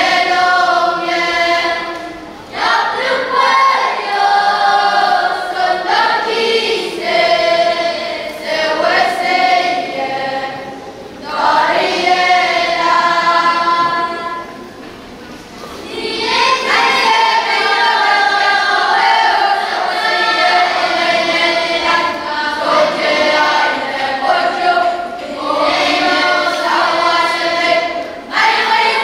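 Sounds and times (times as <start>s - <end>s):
children's choir singing: 0.0s - 29.0s.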